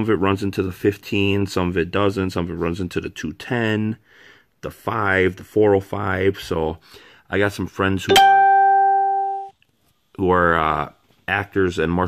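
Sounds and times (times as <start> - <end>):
bright musical note held: 8.1 - 9.5.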